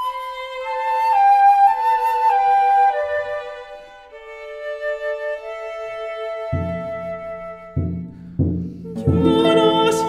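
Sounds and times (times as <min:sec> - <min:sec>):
flute: 0:00.0 - 0:10.0
violin: 0:00.0 - 0:10.0
low drum strokes: 0:06.5 - 0:10.0.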